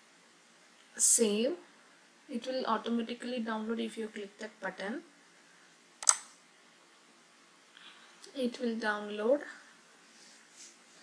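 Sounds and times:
faint background hiss: 0.0 - 11.0
computer mouse click: 6.0 - 6.4.

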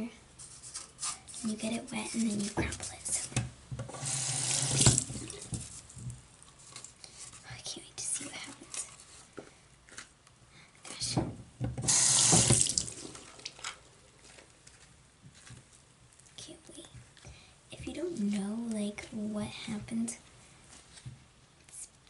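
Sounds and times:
faint handling sounds: 0.3 - 3.4, 5.2 - 11.1, 13.2 - 22.0
sink tap running: 3.9 - 5.6, 11.8 - 13.5.

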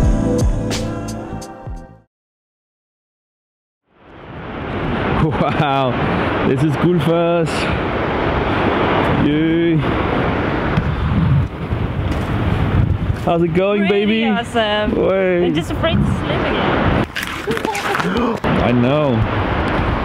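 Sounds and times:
wind buffeting microphone: 4.2 - 20.0
people's voices: 13.2 - 16.8, 17.4 - 19.3.

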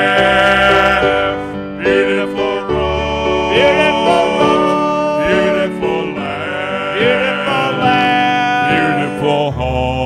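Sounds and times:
instrumental accompaniment: 0.0 - 10.0
male trio singing in harmony: 0.0 - 10.0.

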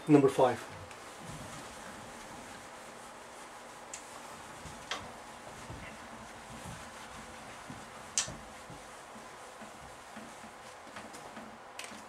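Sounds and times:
eraser knocking on whiteboard: 4.6 - 11.6.

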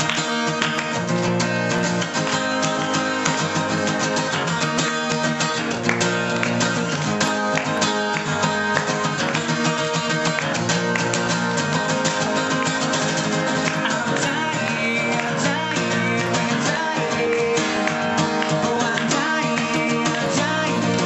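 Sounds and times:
acoustic guitar strumming chords: 0.0 - 21.0.

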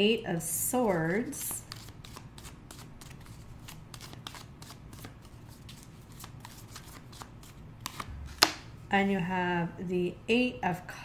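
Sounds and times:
cards shuffled by hand: 1.6 - 8.6.

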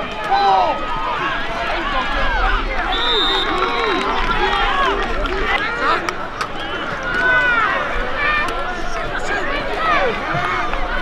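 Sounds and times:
crowd shouting and yelling: 0.0 - 11.0.

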